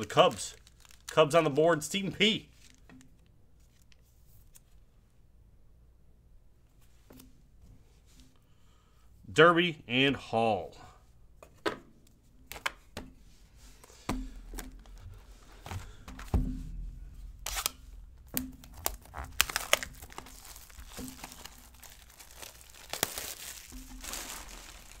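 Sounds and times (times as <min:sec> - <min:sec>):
plastic wrap crinkling and tearing: 0:00.0 - 0:04.6, 0:17.3 - 0:25.0.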